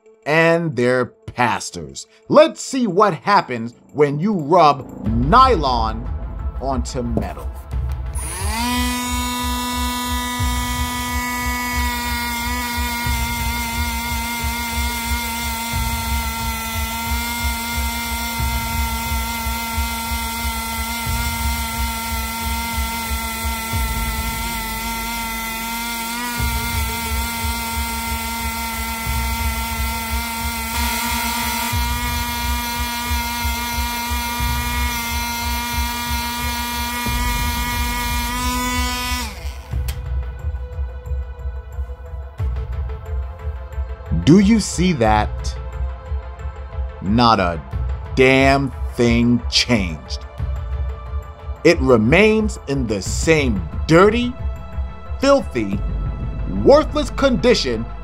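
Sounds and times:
rotary tool motor whine: 0:08.1 - 0:40.0.

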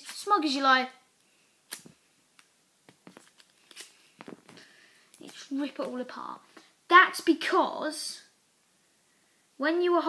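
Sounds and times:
paper packet ripping and crumpling: 0:03.0 - 0:04.6.

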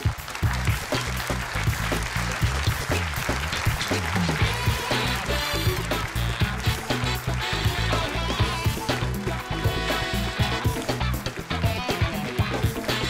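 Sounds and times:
audience applause: 0:00.0 - 0:13.0
band playing: 0:00.0 - 0:13.0.

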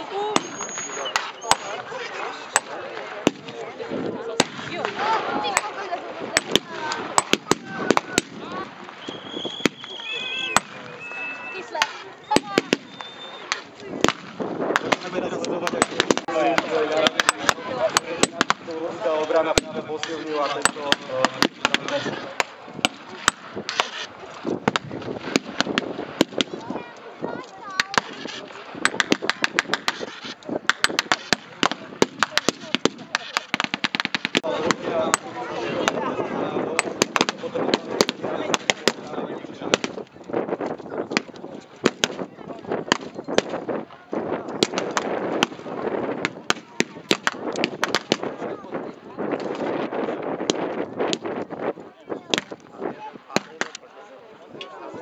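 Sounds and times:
distant voices and shouting: 0:00.0 - 0:49.8.

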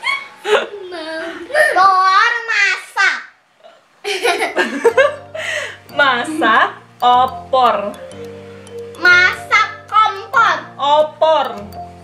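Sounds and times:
woman and children laughing: 0:00.0 - 0:01.8, 0:04.0 - 0:05.6.

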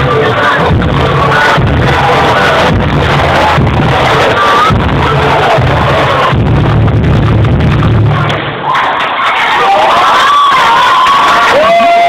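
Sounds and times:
crowd cheering and screaming: 0:01.7 - 0:06.4, 0:08.1 - 0:12.0.

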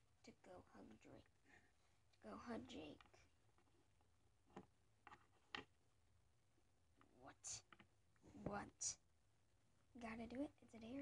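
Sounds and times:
faint clicks and taps: 0:02.1 - 0:05.8, 0:06.9 - 0:08.8.

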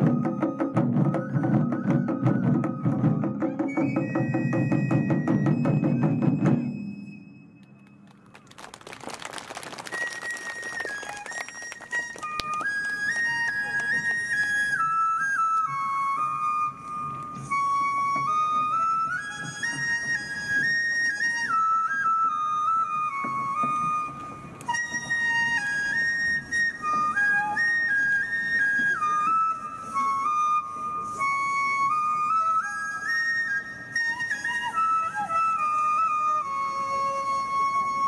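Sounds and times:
bamboo flute solo melody: 0:00.0 - 0:08.3, 0:09.7 - 0:38.0.

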